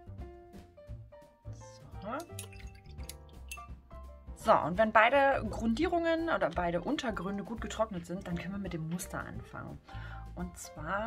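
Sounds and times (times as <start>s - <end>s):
light background music: 0.0s - 11.0s.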